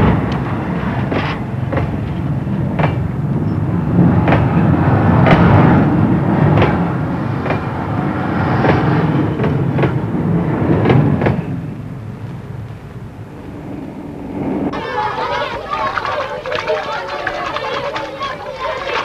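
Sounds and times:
wheels clacking over rail joints: 0.0 - 11.9
electric train rumbling past: 0.0 - 19.0
outdoor voices: 0.0 - 19.0
children chattering: 14.7 - 19.0.

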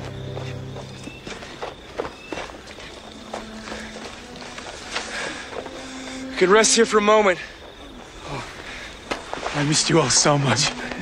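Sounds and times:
uneven footsteps: 0.0 - 6.5, 7.2 - 11.0.

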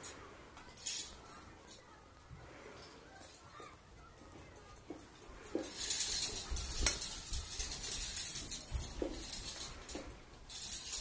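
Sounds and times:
close scratchy rustling: 0.0 - 11.0.

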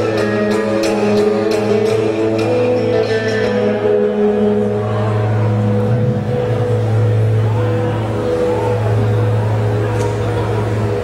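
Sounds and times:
electric guitar and bass drone: 0.0 - 11.0.

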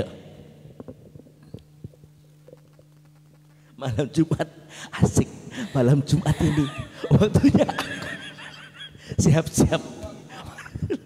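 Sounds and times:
microphone hum: 0.0 - 3.7.

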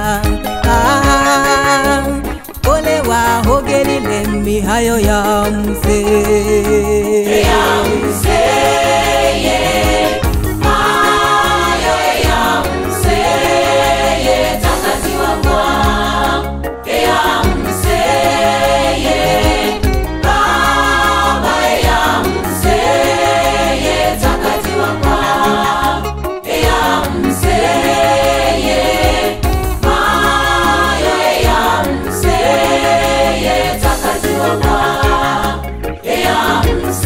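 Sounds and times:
women singing in harmony: 0.0 - 6.2, 7.2 - 37.0
instrumental backing with bass: 0.0 - 37.0.

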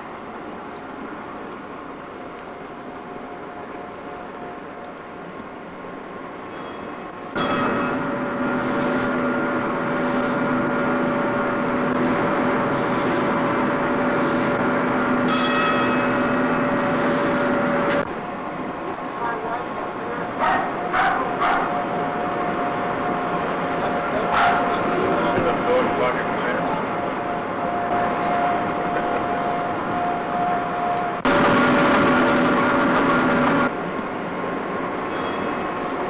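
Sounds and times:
steam whistle blast: 6.5 - 17.9.

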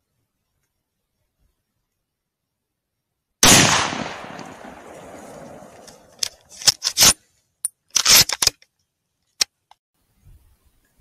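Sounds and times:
rifle shot: 3.4 - 5.8.

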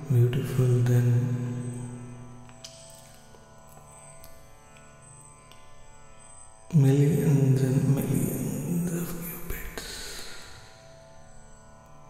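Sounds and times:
devotional drone music: 0.0 - 12.0.

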